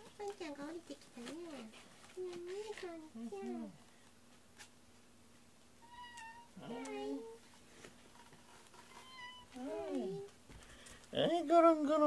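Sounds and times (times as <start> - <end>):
cat meowing: 5.8 - 7.4, 8.9 - 10.3.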